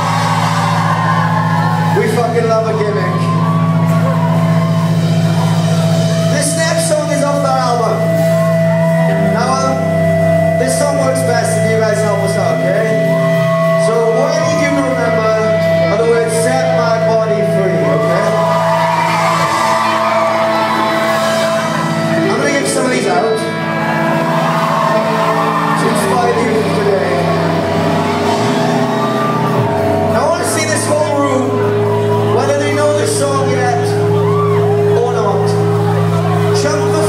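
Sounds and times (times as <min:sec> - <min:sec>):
crowd shouting: 0:00.0 - 0:06.3, 0:17.9 - 0:32.9
rock band droning chord: 0:00.0 - 0:37.0.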